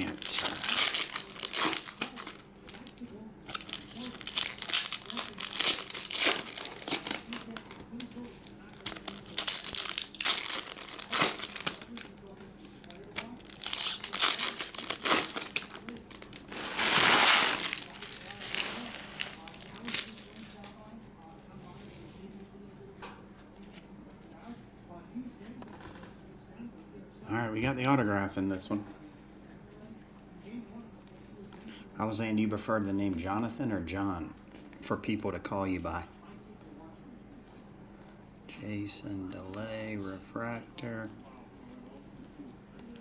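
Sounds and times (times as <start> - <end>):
foil wrappers tearing and crinkling: 0.0 - 20.8.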